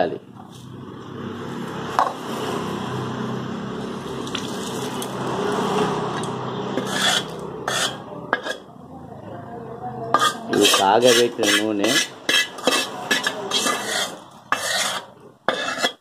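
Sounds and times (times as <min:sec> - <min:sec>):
hot oil hissing: 0:03.8 - 0:08.0.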